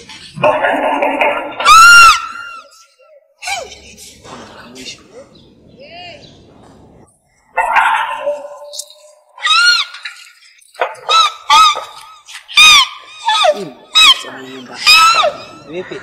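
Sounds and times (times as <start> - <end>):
high-pitched cries: 1.5 - 3.8, 8.2 - 16.0.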